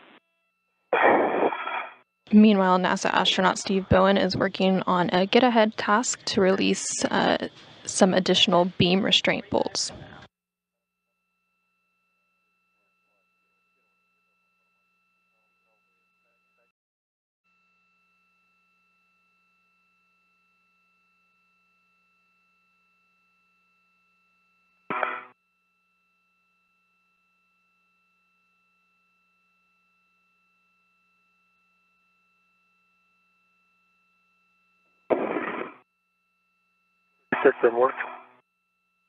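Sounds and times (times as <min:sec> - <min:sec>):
faint hum and tone: 0:00.0 - 0:10.3, 0:11.0 - 0:16.7, 0:17.5 - 0:39.0
radio sound bursts: 0:35.1 - 0:35.8, 0:37.4 - 0:38.3.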